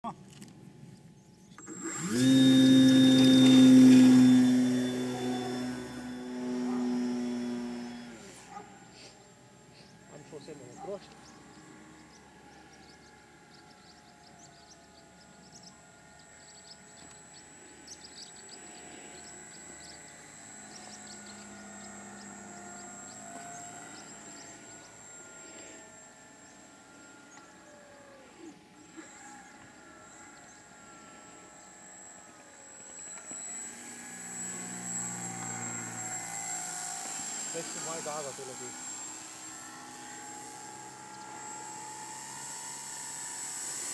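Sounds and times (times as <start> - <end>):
model airplane motor droning: 0.3 - 43.9.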